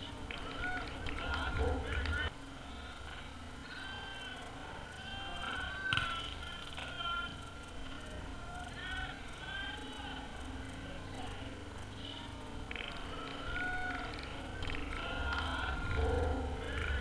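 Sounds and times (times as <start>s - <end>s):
distant players shouting: 0.0s - 17.0s.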